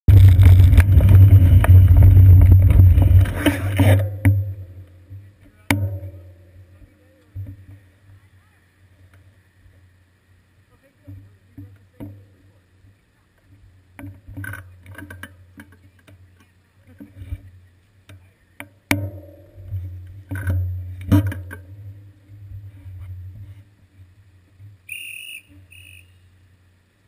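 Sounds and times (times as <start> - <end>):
road rumble: 0.0 - 27.0
wind buffeting: 0.1 - 3.9
faint clicks and knocks: 11.0 - 24.8.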